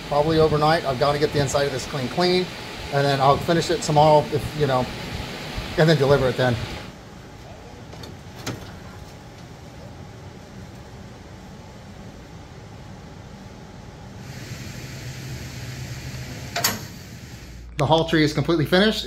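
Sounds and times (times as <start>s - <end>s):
outdoor background hum: 0.0s - 19.0s.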